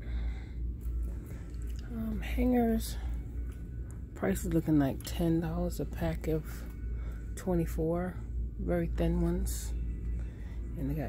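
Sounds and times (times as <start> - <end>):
low rumble of phone being carried: 0.0 - 11.0.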